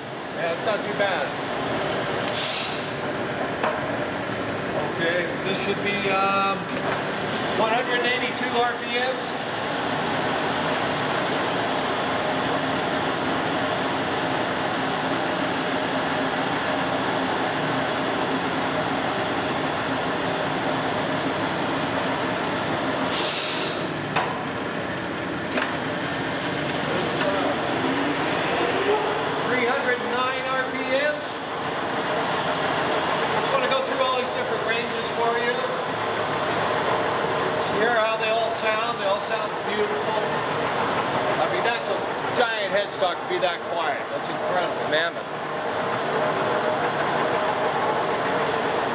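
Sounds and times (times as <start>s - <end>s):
lathe running: 0.0s - 23.1s, 23.8s - 48.9s
brief hiss: 2.3s - 2.9s, 23.0s - 23.8s.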